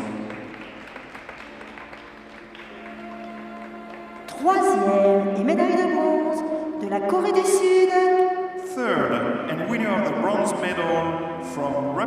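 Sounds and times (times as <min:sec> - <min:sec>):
light applause: 0:00.0 - 0:05.4
quiet background music: 0:00.0 - 0:12.0.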